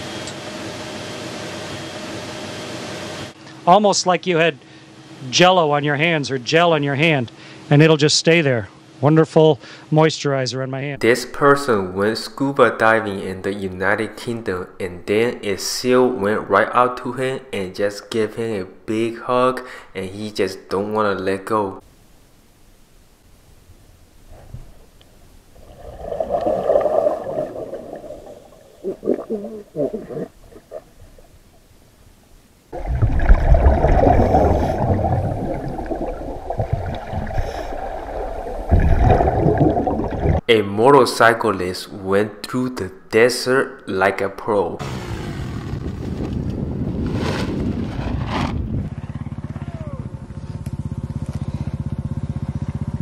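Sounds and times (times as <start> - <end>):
underwater air bubbling: 25.5 - 31.7, 32.7 - 40.5
dirt bike engine running hard: 48.5 - 53.0
fast-pulsing low drone: 48.9 - 53.0.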